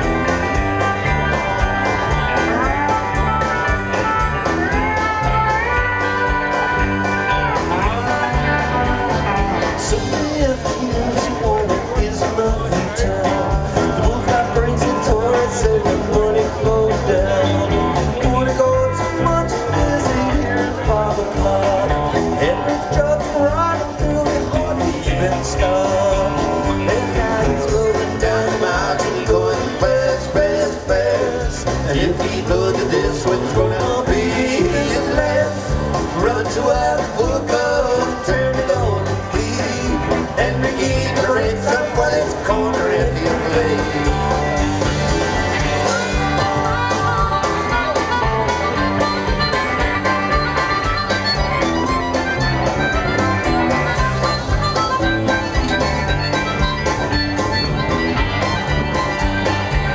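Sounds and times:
harmonica lead line: 0.0s - 59.9s
live country-rock band: 0.0s - 59.9s.

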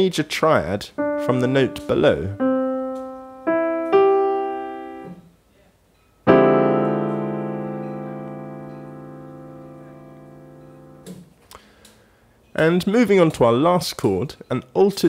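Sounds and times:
piano chord ringing: 1.0s - 5.3s, 6.2s - 11.2s.

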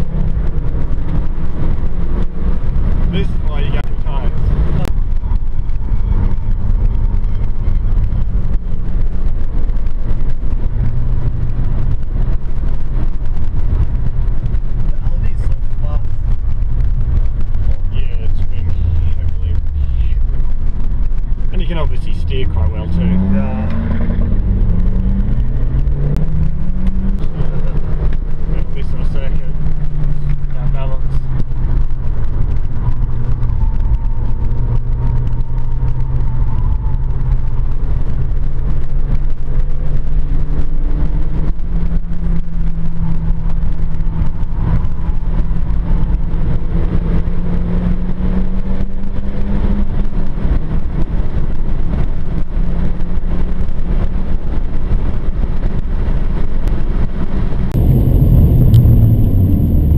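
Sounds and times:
car engine droning: 0.0s - 59.9s.

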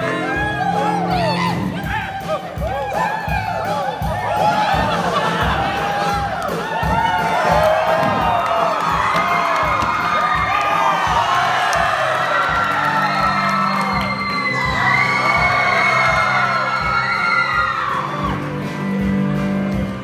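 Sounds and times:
men whooping and cheering: 0.0s - 19.1s
steady rhythmic beat: 0.0s - 20.0s.

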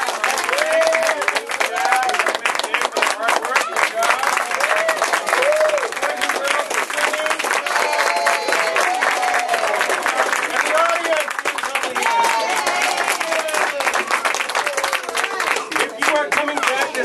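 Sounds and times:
crowd clapping: 0.0s - 17.0s.

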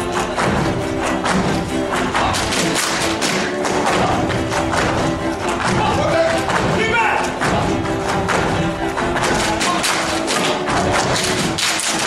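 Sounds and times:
folk dance music: 0.0s - 12.0s.

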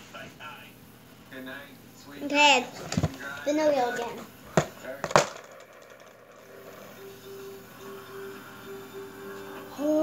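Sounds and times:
plastic spinner knock: 4.6s - 6.5s
faint held tone: 6.4s - 10.0s.

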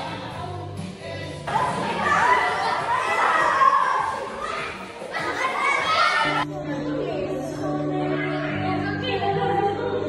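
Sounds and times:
children talking and calling out: 1.4s - 9.4s.

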